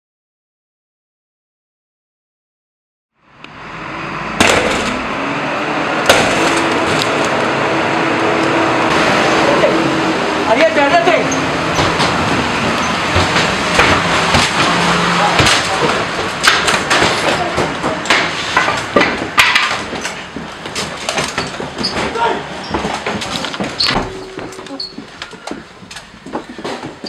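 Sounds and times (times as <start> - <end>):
rush of noise: 3.2 - 20.4
knocks and bangs: 4.3 - 5.3, 6.0 - 7.1, 11.6 - 27.0.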